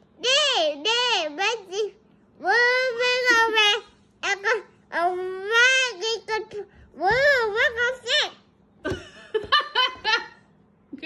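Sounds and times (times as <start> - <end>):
young child giggling: 8.8 - 10.4.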